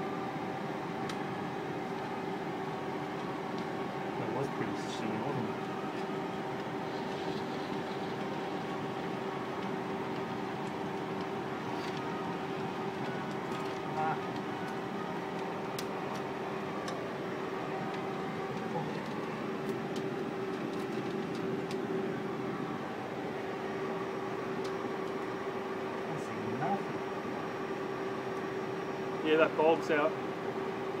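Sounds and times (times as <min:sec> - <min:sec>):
projection equipment humming: 0:00.0 - 0:31.0
film clicking through projector: 0:06.6 - 0:17.0.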